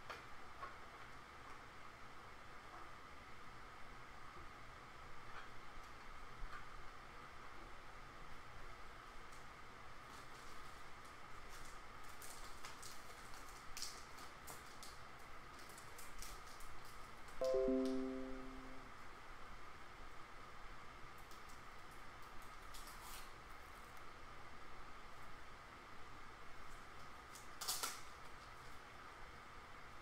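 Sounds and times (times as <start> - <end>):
faint steady hum: 0.0 - 30.0
short falling chime: 17.4 - 18.9.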